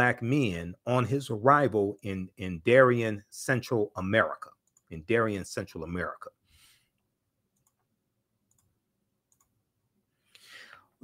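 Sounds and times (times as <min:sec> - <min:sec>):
computer clicks: 0:04.6 - 0:04.9, 0:07.5 - 0:07.9, 0:08.5 - 0:09.6
person breathing in: 0:10.2 - 0:11.0.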